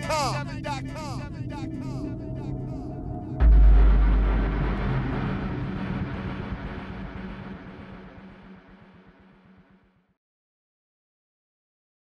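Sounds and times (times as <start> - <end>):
deep boom rumbling: 3.4 - 9.9.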